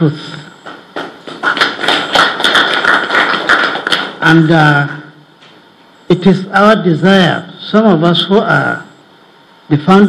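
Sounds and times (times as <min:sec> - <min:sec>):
group of people applauding: 0:00.6 - 0:04.9.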